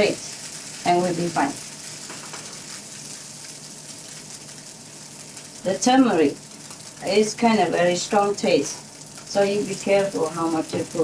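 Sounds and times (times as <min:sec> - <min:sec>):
tofu sizzling in a pan: 0:00.0 - 0:11.0.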